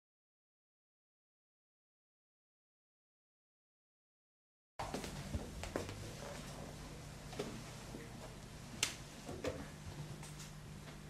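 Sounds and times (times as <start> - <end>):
steady low hum: 4.8 - 11.0.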